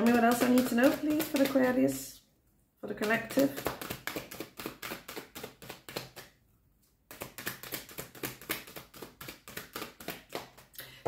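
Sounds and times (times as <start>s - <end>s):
cards shuffled by hand: 0.0s - 1.9s, 3.0s - 6.4s, 7.1s - 10.7s.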